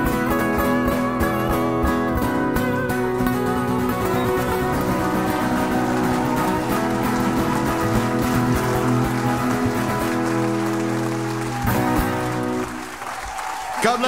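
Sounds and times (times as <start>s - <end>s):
acoustic guitars strumming: 0.0s - 12.9s
audience applause: 3.7s - 14.0s.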